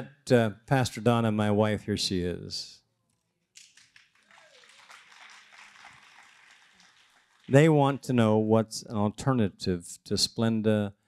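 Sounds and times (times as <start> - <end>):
audience clapping: 3.6 - 7.9.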